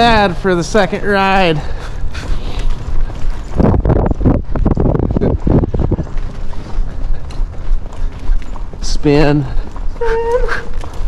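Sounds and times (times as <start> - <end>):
hoofbeats on soft sand: 0.0 - 11.0.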